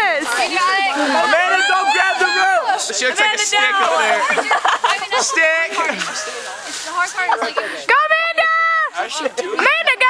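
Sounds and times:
young people laughing: 0.3s - 8.0s, 9.0s - 10.0s.

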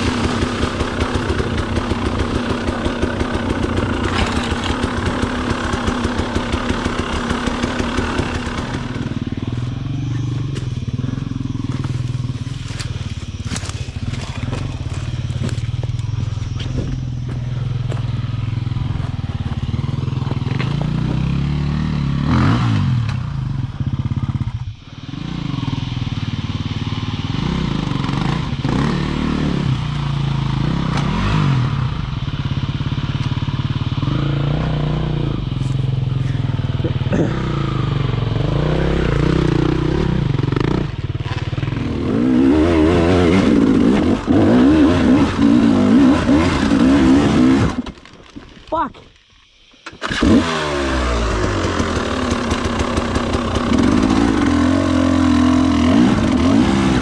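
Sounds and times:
dirt bike engine revving: 0.0s - 48.1s, 49.8s - 57.0s.

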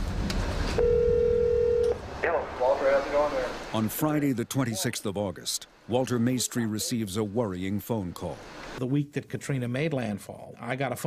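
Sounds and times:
electronic telephone tone: 0.8s - 2.0s.

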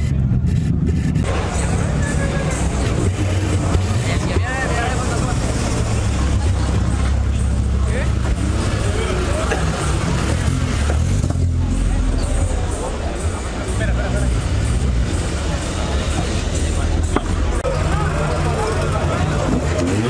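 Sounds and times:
car engines rumbling past: 0.0s - 20.0s
crowd chatter: 0.0s - 20.0s.

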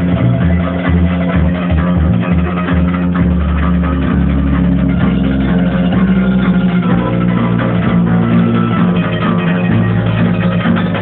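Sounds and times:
acoustic guitar strumming chords: 0.0s - 11.0s
bass guitar notes: 0.0s - 11.0s.

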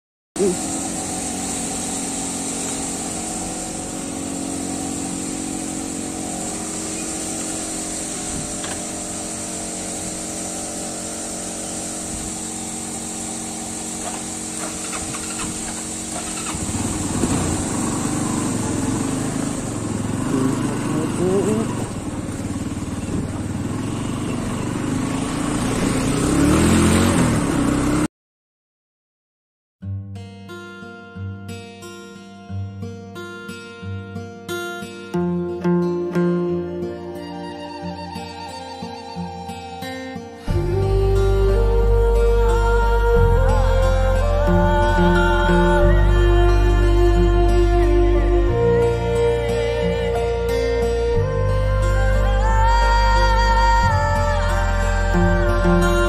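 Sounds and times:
motorcycle engine idling: 0.4s - 26.6s
motorcycle accelerating: 0.4s - 28.1s, 35.2s - 56.0s.

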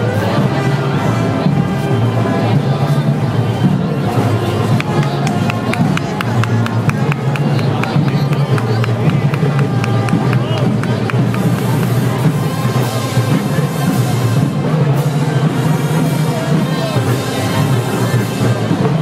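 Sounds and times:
parade band with drums: 0.0s - 19.0s
spectators talking: 0.0s - 19.0s.

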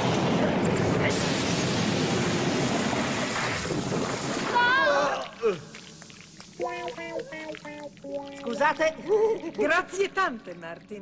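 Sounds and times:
cartoon foam gushing: 1.1s - 11.0s.

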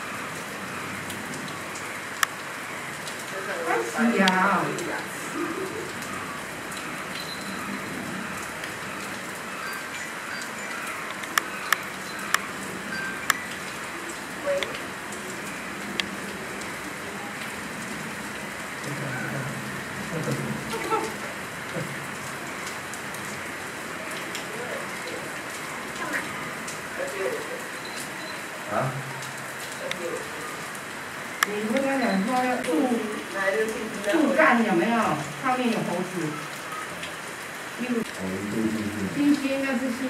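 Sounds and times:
steady rain falling: 0.0s - 40.0s
sharp ticks: 13.2s - 13.4s.

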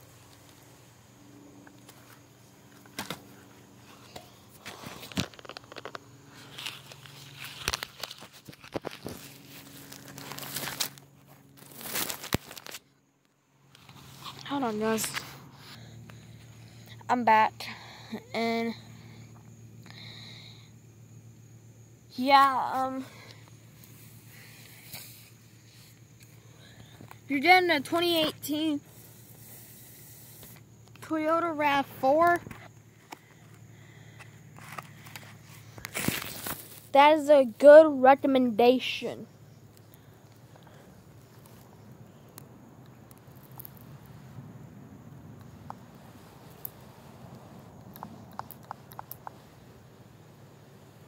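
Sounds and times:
faint low hum: 0.0s - 51.0s.

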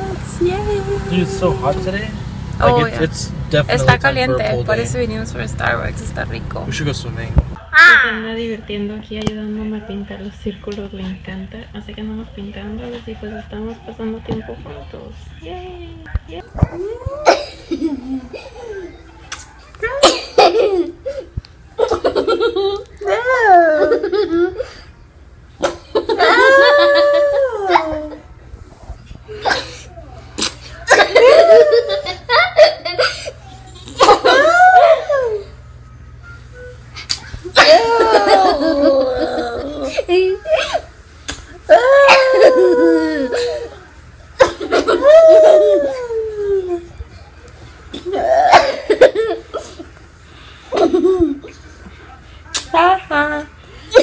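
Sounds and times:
loud cough-like burst: 20.0s - 20.5s
woman laughing hard: 25.9s - 28.2s, 34.0s - 35.5s, 37.6s - 40.8s, 41.8s - 43.7s.

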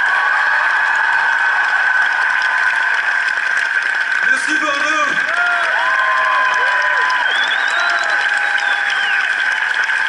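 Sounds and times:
crowd applauding: 0.0s - 10.0s.

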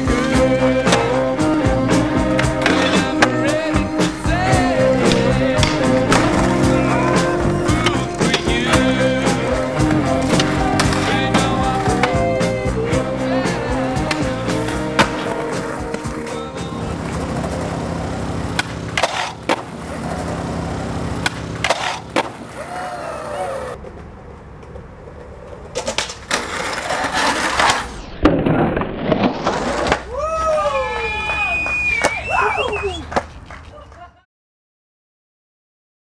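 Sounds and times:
voices calling out: 0.0s - 17.3s, 22.4s - 23.8s, 30.1s - 34.1s
soundtrack music: 0.0s - 17.9s
skateboard wheels rolling on pavement: 0.0s - 34.0s
skateboard pop and landing clacks: 18.6s - 19.7s, 21.2s - 22.5s.

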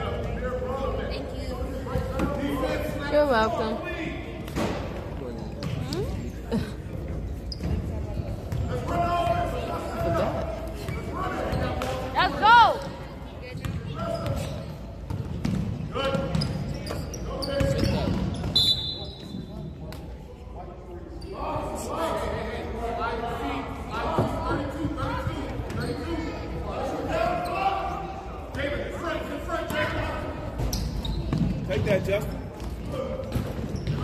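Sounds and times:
voices echoing in gym: 0.0s - 34.0s
sneaker squeaking on court: 7.1s - 8.8s, 9.8s - 11.8s, 12.4s - 19.6s, 25.6s - 26.4s, 30.6s - 34.0s.

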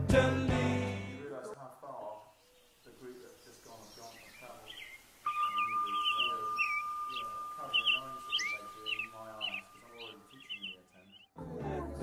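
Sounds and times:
bird-like twittering chirps: 2.0s - 11.4s
steady high tone: 5.3s - 11.2s.

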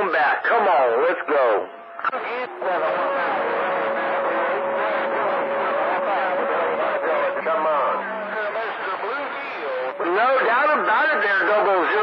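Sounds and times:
garbled radio voices: 0.0s - 12.0s
steady radio tone: 0.0s - 12.0s.

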